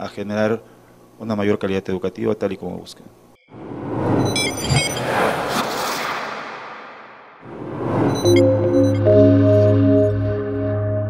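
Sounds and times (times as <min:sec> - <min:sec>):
whoosh sound effect: 0:03.5 - 0:09.0.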